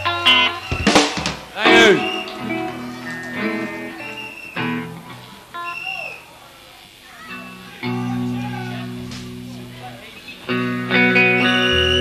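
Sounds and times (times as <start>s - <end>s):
electric guitar notes: 0.0s - 5.8s, 7.2s - 12.0s
live rock band: 0.0s - 6.2s, 7.2s - 12.0s.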